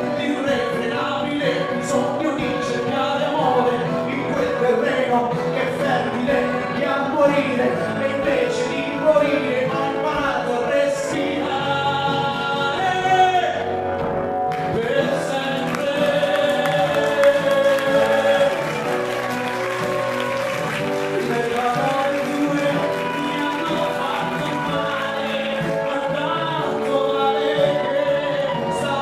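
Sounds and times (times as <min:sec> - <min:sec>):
acoustic guitar: 0:00.0 - 0:29.0
man singing pop ballad: 0:00.0 - 0:29.0
piano: 0:00.0 - 0:29.0.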